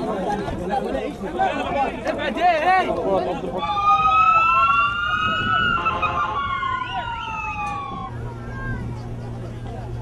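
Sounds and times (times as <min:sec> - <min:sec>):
emergency siren wailing: 0:03.6 - 0:09.2.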